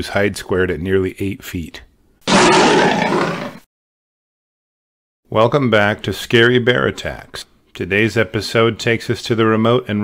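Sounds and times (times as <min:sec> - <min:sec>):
bear roar: 0:02.3 - 0:03.6.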